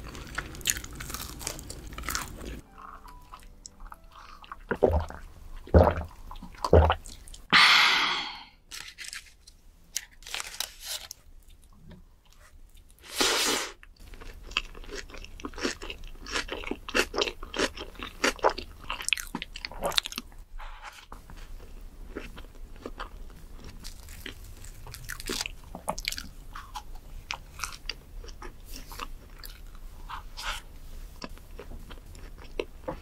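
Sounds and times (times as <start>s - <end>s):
chewing with crunches: 0.0s - 7.5s, 13.8s - 33.0s.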